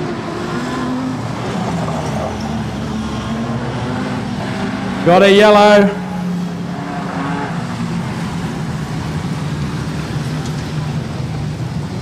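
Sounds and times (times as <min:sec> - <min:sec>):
race car engines running: 0:00.0 - 0:12.0.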